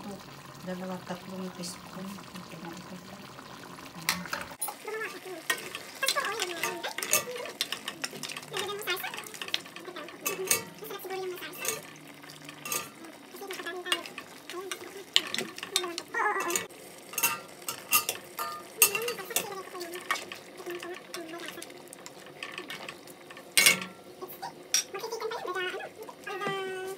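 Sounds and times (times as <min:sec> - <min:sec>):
thick stew being stirred: 0:03.3 - 0:26.9
metal spoon clinking in pot: 0:05.5 - 0:10.8, 0:11.5 - 0:13.0, 0:13.9 - 0:24.0.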